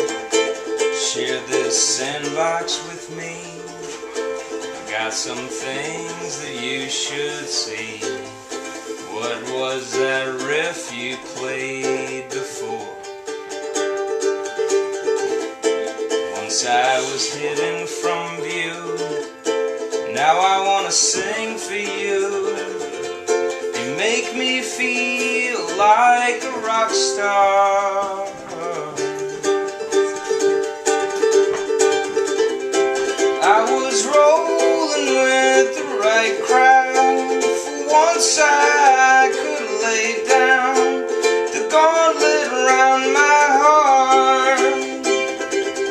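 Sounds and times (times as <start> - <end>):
man singing: 0.0 - 13.2, 16.1 - 29.8, 33.0 - 45.9
ukulele plucking and strumming: 0.0 - 45.9.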